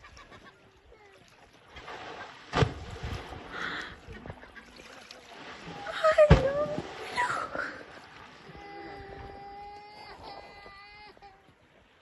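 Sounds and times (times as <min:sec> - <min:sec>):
small child crying: 0:08.5 - 0:11.5.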